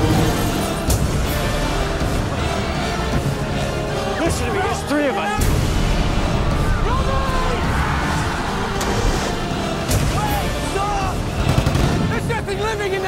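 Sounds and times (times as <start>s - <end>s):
trailer music: 0.0s - 13.0s
people shouting and screaming: 4.2s - 11.4s.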